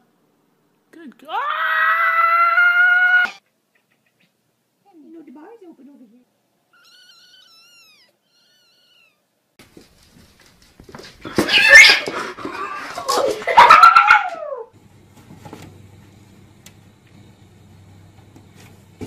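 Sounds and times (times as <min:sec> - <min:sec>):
cats screeching and yowling: 0:01.4 - 0:03.4, 0:06.8 - 0:09.3, 0:11.3 - 0:14.7
kitten mewing faintly: 0:06.7 - 0:09.3.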